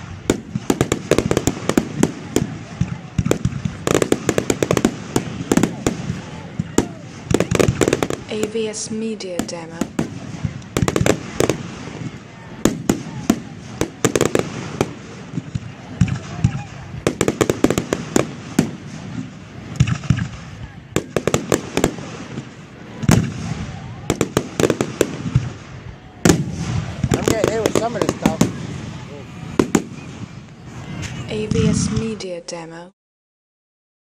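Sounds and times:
firework shells bursting: 0.0s - 32.1s.

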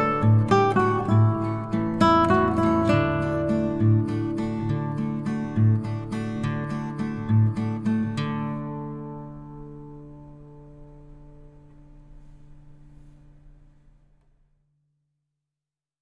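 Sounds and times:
acoustic guitar plucking: 0.0s - 14.1s.

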